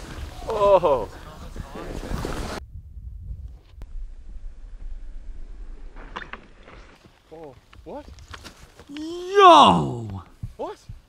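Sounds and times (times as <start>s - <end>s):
faint voice: 8.9s - 10.2s.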